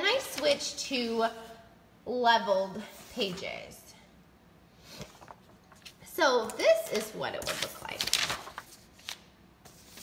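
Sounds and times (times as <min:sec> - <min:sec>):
paper rustling: 0:04.9 - 0:06.1, 0:06.8 - 0:10.0.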